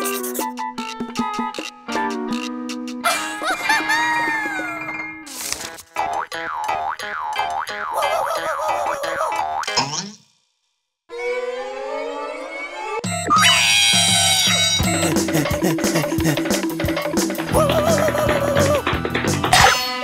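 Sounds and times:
bouncy cartoon music: 0.0 - 5.2, 5.9 - 10.0, 13.0 - 20.0
falling glide effect: 11.1 - 13.5
wavering cartoon scream: 13.3 - 15.0, 17.6 - 18.8.

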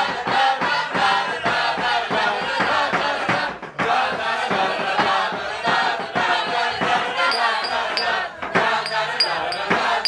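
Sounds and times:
group singing a cappella: 0.0 - 10.0
low thumping beat: 6.8 - 10.0.

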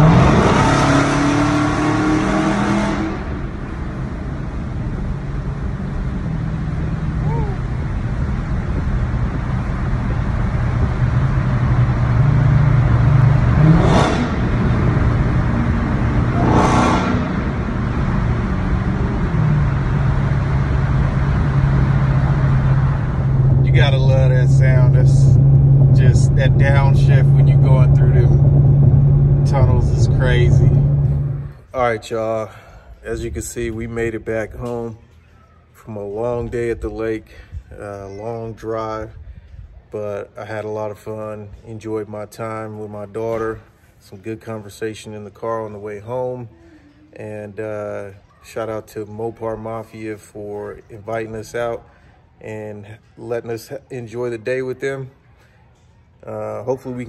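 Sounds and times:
car engine drone: 0.0 - 31.8.

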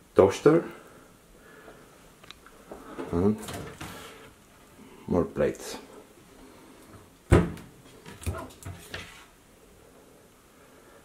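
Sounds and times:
cupboard door knocking shut: 7.3 - 7.7.

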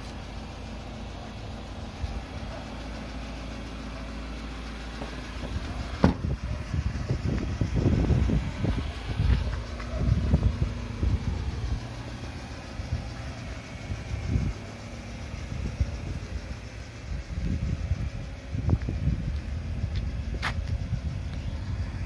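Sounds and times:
diesel van idling: 0.0 - 22.0
low rumbling gusts: 6.1 - 12.0.

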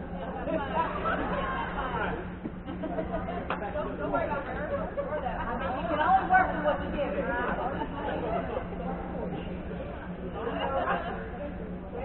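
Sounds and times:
indistinct chatter of voices: 0.0 - 12.0
steady low hum: 0.0 - 12.0.

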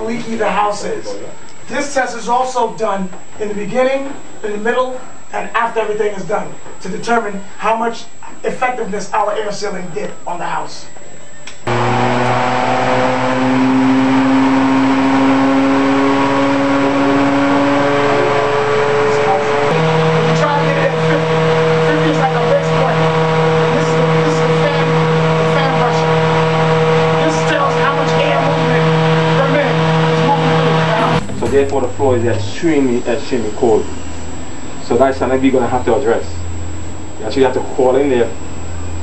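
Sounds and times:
fan humming: 11.7 - 39.0.

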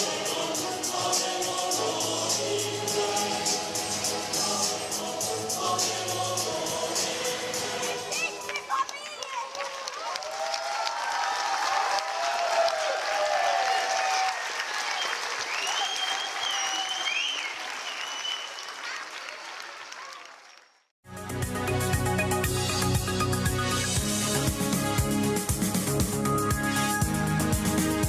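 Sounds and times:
music: 0.0 - 9.4, 21.0 - 28.0
crowd applauding and cheering: 8.0 - 20.9.

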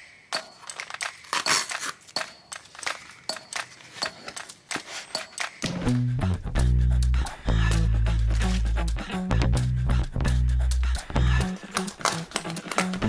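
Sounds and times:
packaging clicks and rustles: 0.3 - 5.6, 11.5 - 13.0.

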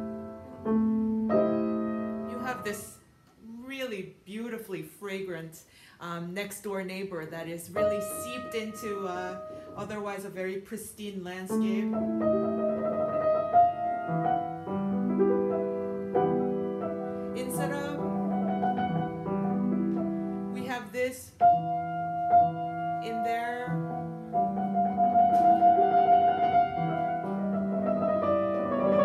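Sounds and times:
grand piano playing slowly: 0.0 - 3.5, 7.7 - 10.6, 11.4 - 29.0.

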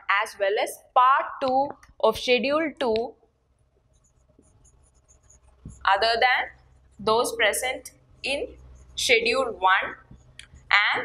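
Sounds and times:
marker squeaking on whiteboard: 3.9 - 7.4, 8.4 - 11.0.

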